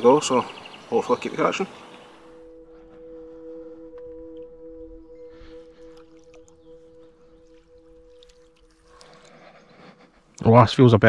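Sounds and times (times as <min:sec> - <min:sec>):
soft two-note drone: 0:02.1 - 0:09.7.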